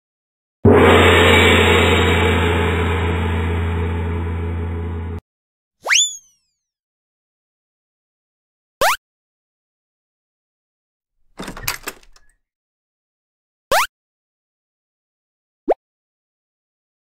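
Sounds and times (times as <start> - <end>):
cartoon crash with low hum: 0.7 - 5.2
cartoon swoop: 5.8 - 6.3.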